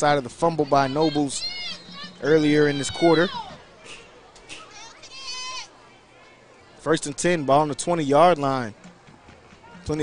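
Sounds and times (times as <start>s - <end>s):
crowd murmur: 0.3s - 7.7s, 8.4s - 10.0s
high-pitched shout from crowd: 0.9s - 3.6s.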